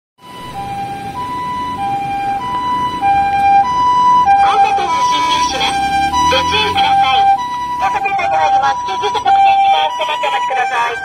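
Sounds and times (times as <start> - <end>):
two-tone ambulance siren: 0.2 - 11.0
voice over loudspeaker: 4.4 - 11.0.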